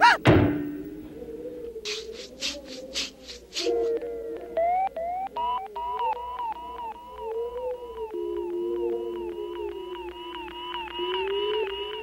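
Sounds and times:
scratchy rattle strokes: 0:01.9 - 0:03.7.

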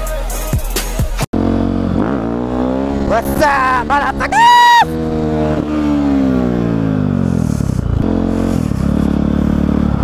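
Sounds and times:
music: 0:00.0 - 0:01.3
motorcycle engine revving: 0:01.2 - 0:10.0.

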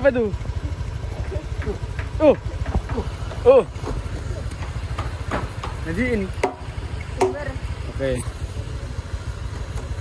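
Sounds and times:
motorcycle engine idling low: 0:00.0 - 0:10.0.

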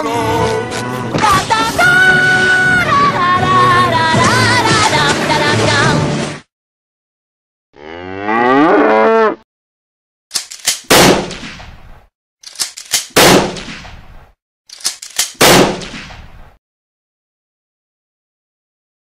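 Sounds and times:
cartoon cow mooing: 0:07.8 - 0:09.4
gunshot-like bangs: 0:10.9 - 0:11.7, 0:13.1 - 0:14.0, 0:15.4 - 0:16.4.

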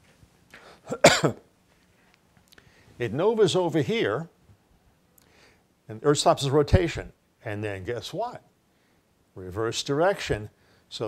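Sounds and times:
man coughing: 0:00.9 - 0:01.5.

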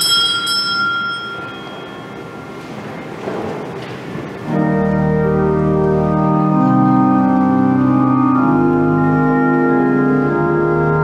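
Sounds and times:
high bell ringing: 0:00.0 - 0:02.9.

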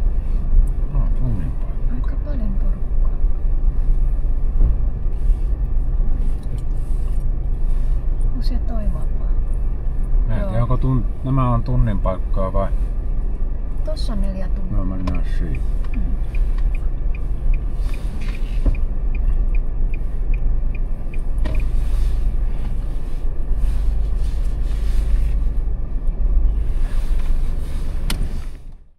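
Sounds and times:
car driving slowly: 0:00.0 - 0:28.9
turn signal ticking: 0:13.2 - 0:22.8.

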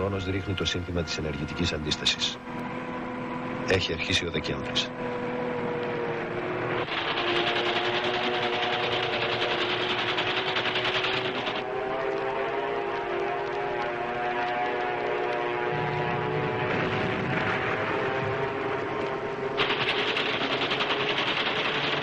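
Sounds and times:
propeller aircraft engines droning: 0:00.0 - 0:22.0.

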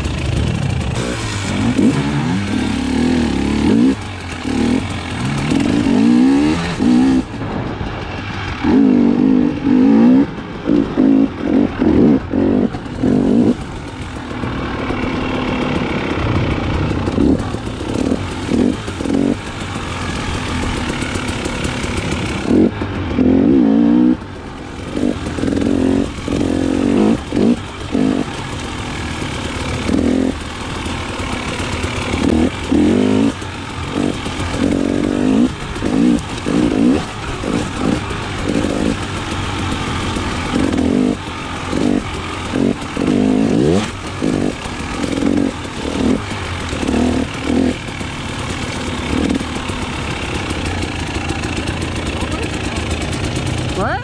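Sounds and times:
dirt bike engine revving: 0:00.0 - 0:54.0.

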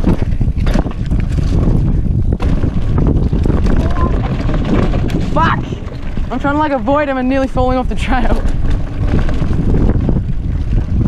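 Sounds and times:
bike knocking and rattling: 0:00.0 - 0:11.0
tyres rumbling on dirt: 0:00.0 - 0:11.0
wind buffeting microphone: 0:00.0 - 0:11.0.

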